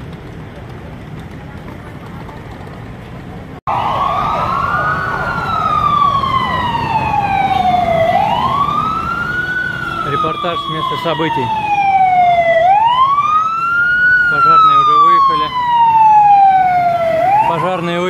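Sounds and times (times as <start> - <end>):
street traffic noise: 0.0 - 18.0
fire engine siren wailing: 3.7 - 18.0.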